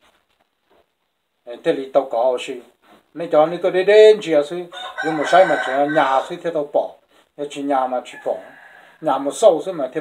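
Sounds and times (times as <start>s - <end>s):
rooster crowing: 4.7s - 6.4s, 8.1s - 9.2s.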